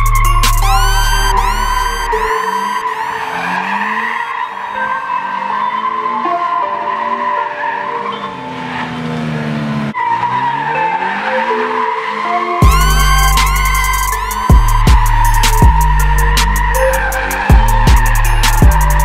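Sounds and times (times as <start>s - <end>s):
car engine revving: 0.0s - 19.0s
tyres squealing: 0.0s - 19.0s.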